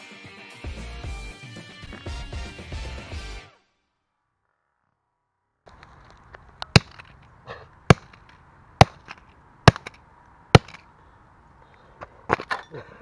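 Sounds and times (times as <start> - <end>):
debris clicks: 5.7 - 7.3.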